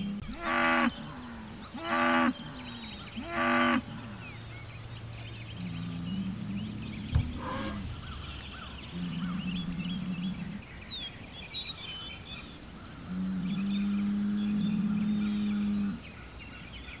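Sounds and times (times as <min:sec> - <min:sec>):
small birds chirping: 0:00.0 - 0:17.0
bull bellowing: 0:05.6 - 0:10.7
sharp thump: 0:07.1 - 0:08.4.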